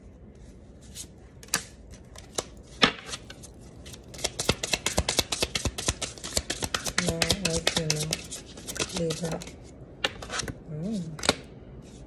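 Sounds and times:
cards being shuffled: 0:00.8 - 0:12.0.

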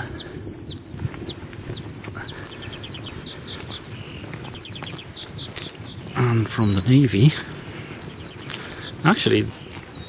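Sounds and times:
songbird singing: 0:00.0 - 0:10.0.

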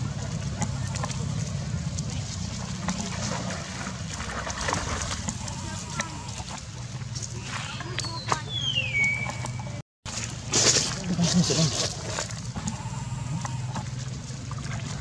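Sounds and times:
small splashes and clicks: 0:00.0 - 0:15.0
water splashing and sloshing: 0:00.0 - 0:15.0
steady low hum: 0:10.4 - 0:15.0.

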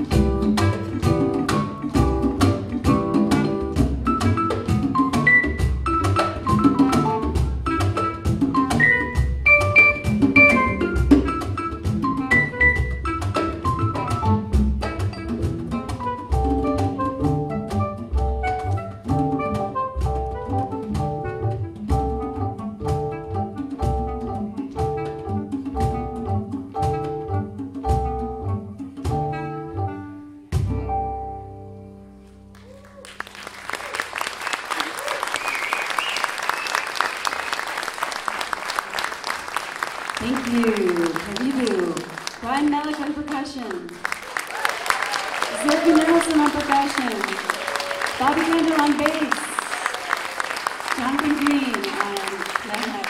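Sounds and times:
jazz band playing: 0:00.0 - 0:53.0.

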